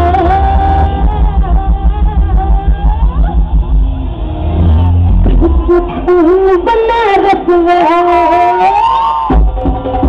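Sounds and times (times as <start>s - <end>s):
heavy bass pulsing: 0.0s - 7.8s
low rumble: 0.2s - 6.5s.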